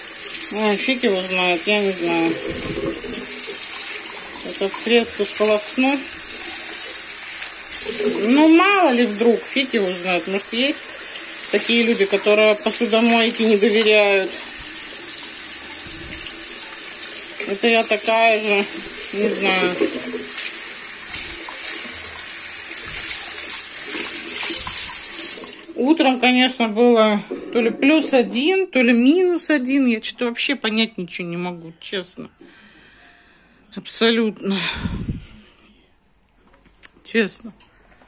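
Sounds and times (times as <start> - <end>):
tap water running onto a plate: 0.0 - 25.8
tap water splashing in bowl: 18.6 - 21.9, 22.8 - 25.6.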